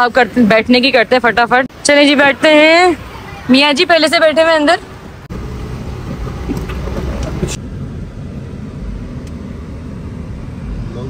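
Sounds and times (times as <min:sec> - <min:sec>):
car engine and road noise: 0:00.0 - 0:11.0
outside hiss: 0:00.0 - 0:11.0.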